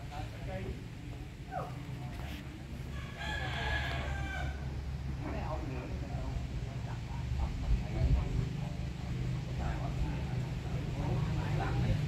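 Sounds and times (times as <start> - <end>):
rooster crowing: 2.8 - 4.8.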